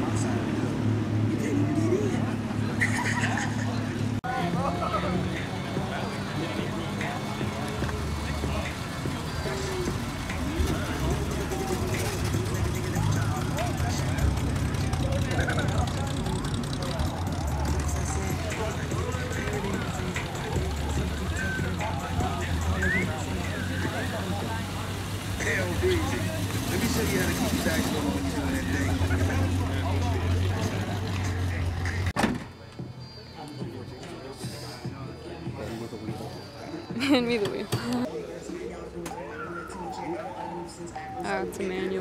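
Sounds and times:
car engines idling: 0.0s - 33.0s
crowd of people talking: 0.0s - 42.0s.

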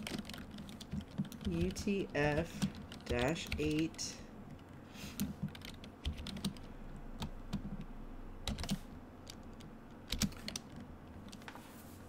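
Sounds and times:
typing on a keyboard: 0.0s - 7.9s, 8.5s - 11.5s.

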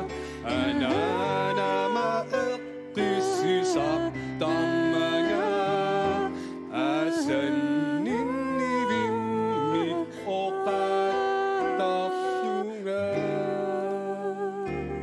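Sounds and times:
person singing long notes: 0.0s - 15.0s.

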